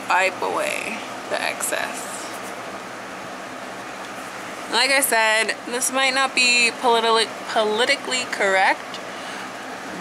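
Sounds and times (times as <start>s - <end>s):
electric fan whooshing: 0.0s - 10.0s.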